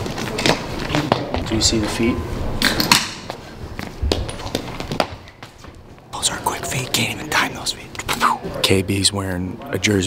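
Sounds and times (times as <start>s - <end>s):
quick footsteps on hard floor: 3.3s - 6.1s.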